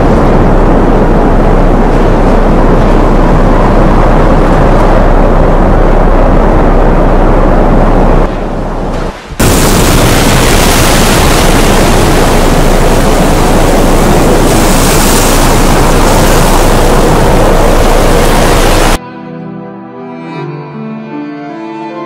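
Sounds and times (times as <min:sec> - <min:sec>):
wind blowing over microphone: 0:00.0 - 0:19.0
floodwater rushing through spillway: 0:08.3 - 0:19.0.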